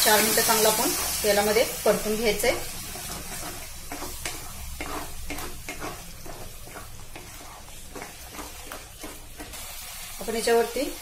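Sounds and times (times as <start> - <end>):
food sizzling in a pan: 0.0 - 11.0
spatula scraping a pan: 0.1 - 10.3.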